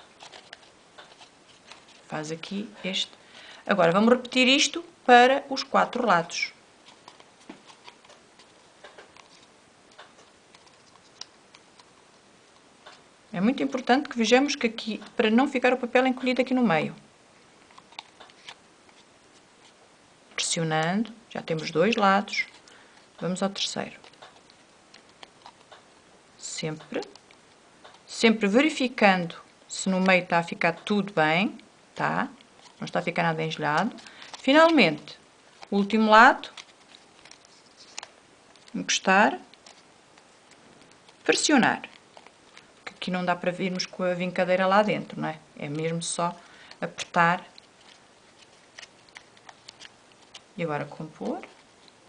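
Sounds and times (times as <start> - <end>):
paper crinkling and clicking: 0.0 - 2.1, 6.9 - 12.0, 21.6 - 25.9, 32.6 - 38.8, 39.5 - 44.0, 46.9 - 52.0.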